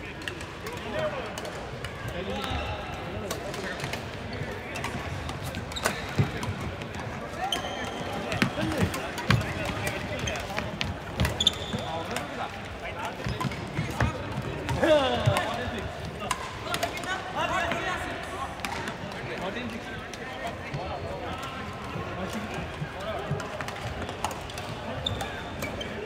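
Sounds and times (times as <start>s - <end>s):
players' voices: 0.0s - 26.0s
sneakers squeaking on wooden floor: 5.5s - 6.6s, 7.4s - 12.2s, 24.8s - 26.0s.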